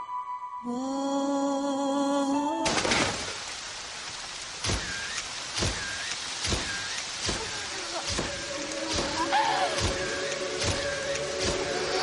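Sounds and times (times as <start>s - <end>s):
heavy rain: 2.2s - 12.0s.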